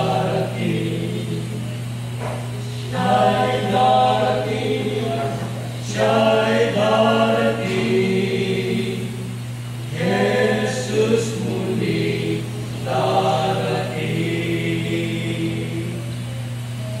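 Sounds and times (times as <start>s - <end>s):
male trio singing a hymn: 0.0s - 16.2s
low hum: 0.0s - 17.0s.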